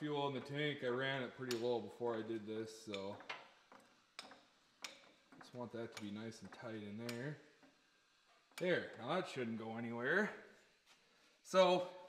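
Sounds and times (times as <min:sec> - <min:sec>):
sharp light clicks: 0:01.5 - 0:01.7.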